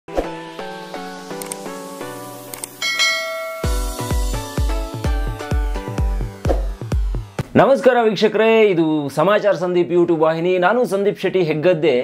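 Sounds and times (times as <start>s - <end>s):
bright bell-like chime: 2.8s - 4.4s
plucked notes: 2.8s - 7.4s
electronic beat with bass kicks: 3.6s - 7.5s.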